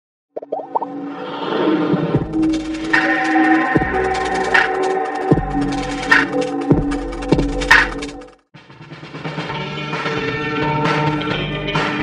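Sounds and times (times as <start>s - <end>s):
short rising plops: 0.4s - 1.0s.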